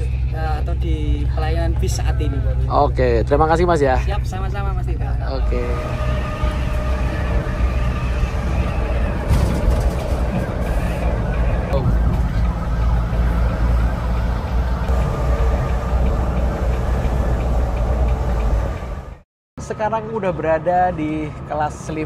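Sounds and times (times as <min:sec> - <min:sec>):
diesel engine and road drone: 0:00.0 - 0:22.0.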